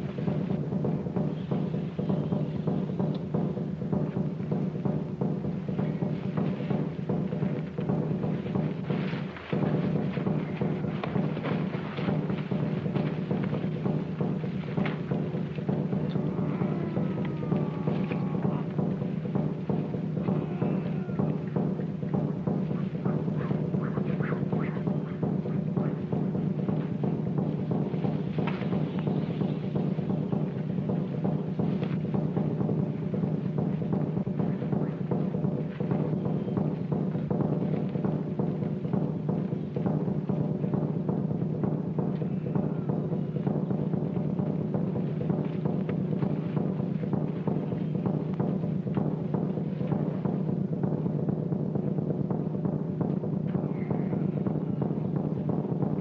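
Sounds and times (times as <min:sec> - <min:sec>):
fast drumming: 0:00.0 - 0:56.0
low drone: 0:04.3 - 0:32.0.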